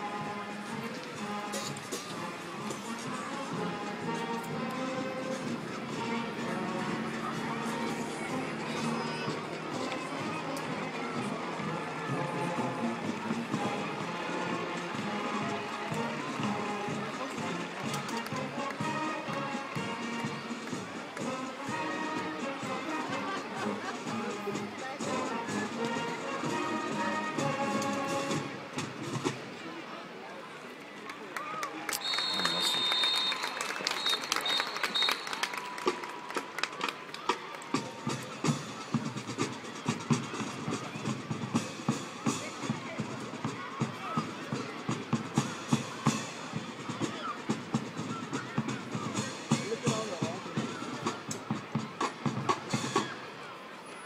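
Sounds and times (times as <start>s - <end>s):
marching band playing: 0.0s - 29.6s, 32.0s - 53.4s
crowd chatter: 0.0s - 54.0s.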